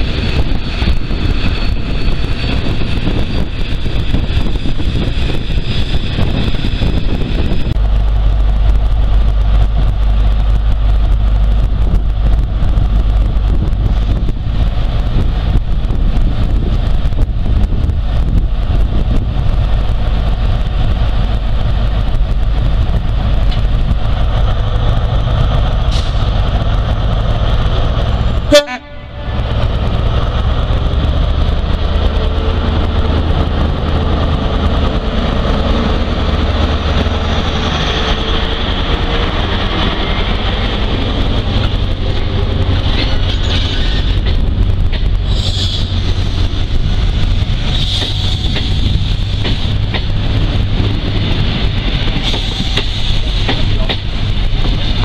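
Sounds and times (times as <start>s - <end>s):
diesel locomotive engine rumble: 0.0s - 55.0s
train coaches rolling by: 0.0s - 55.0s.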